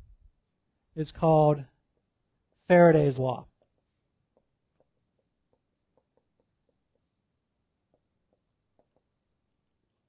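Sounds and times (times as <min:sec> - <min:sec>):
marker ticking on whiteboard: 0:03.4 - 0:10.0.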